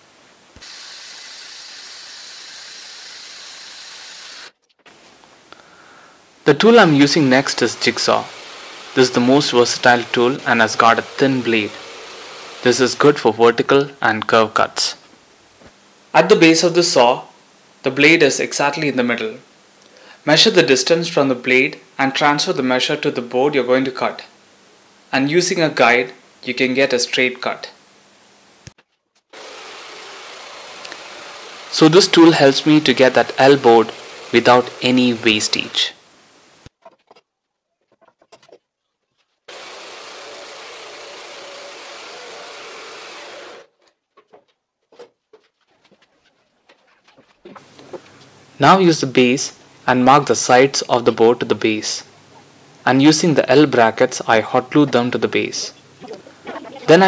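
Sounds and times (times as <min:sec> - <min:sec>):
circular saw cutting board: 0:00.6 - 0:04.6, 0:06.6 - 0:13.2, 0:29.4 - 0:36.0, 0:39.5 - 0:43.7
jigsaw cutting board: 0:29.4 - 0:35.7, 0:39.5 - 0:43.7.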